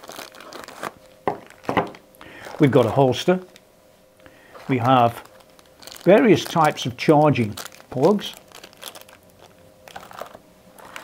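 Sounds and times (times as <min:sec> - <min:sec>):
plastic bag crinkling: 0:00.0 - 0:03.6, 0:04.3 - 0:11.0.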